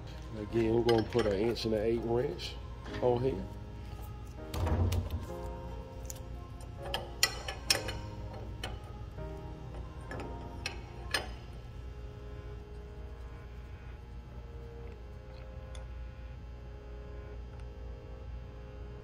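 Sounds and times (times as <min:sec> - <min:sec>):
background music: 0:00.0 - 0:19.0
wrench clicking on metal: 0:06.8 - 0:08.9, 0:09.7 - 0:11.4.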